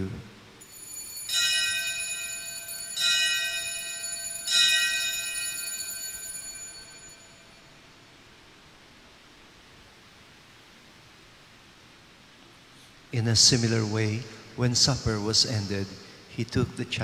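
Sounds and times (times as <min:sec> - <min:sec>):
altar bell ringing: 0:00.6 - 0:08.0.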